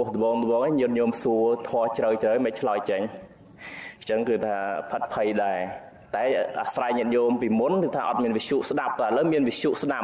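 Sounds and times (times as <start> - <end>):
man talking: 0.0 - 3.4, 4.0 - 10.0.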